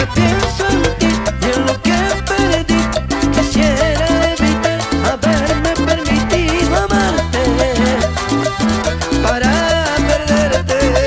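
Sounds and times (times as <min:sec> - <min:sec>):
accordion melody: 0:00.0 - 0:11.0
electric bass: 0:00.0 - 0:11.0
percussion dance beat: 0:00.0 - 0:11.0.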